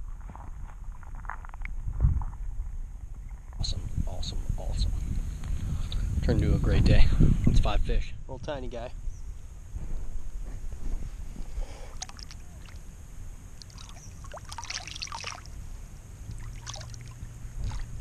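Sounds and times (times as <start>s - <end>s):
water splashing: 11.9s - 12.9s, 13.5s - 18.0s.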